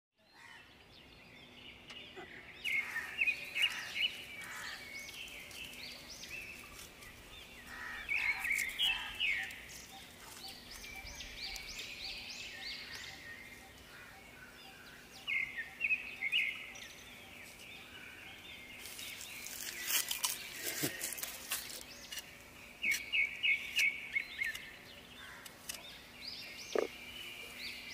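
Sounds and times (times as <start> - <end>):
birds chirping: 0.2 - 27.9
faint outdoor background: 0.2 - 27.9.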